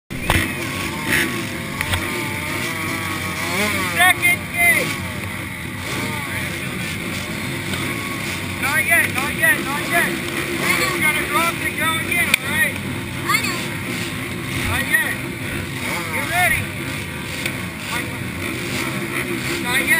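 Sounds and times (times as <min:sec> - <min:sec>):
motocross bikes idling: 0:00.1 - 0:19.9.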